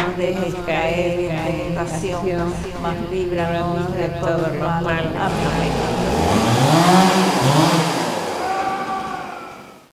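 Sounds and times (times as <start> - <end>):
chainsaw engine revving: 5.2 - 9.9.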